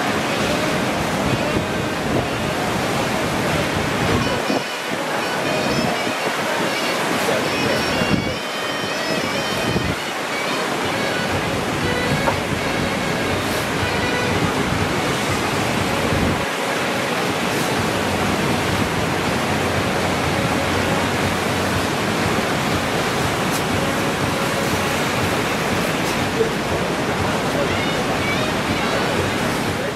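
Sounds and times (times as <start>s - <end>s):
ocean surf breaking: 0.0s - 29.9s
wind on microphone: 0.0s - 29.9s.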